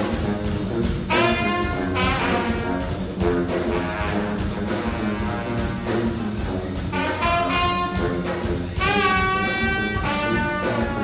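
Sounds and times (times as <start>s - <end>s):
brass band playing jazzy piece: 0.0s - 11.0s.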